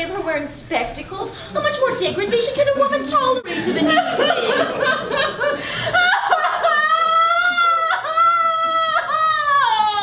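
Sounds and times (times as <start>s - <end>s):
woman wailing: 6.0s - 10.0s.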